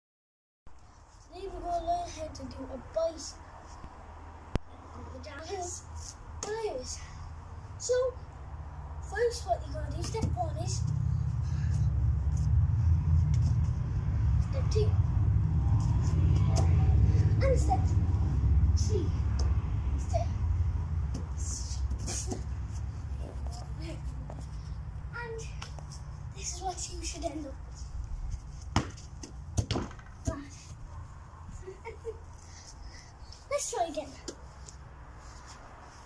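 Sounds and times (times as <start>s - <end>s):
steady low rumble: 0.7s - 36.0s
football thuds: 28.6s - 30.6s.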